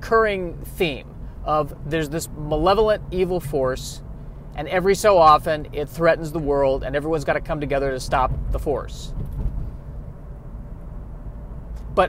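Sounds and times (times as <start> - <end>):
low steady background rumble: 0.0 - 12.0.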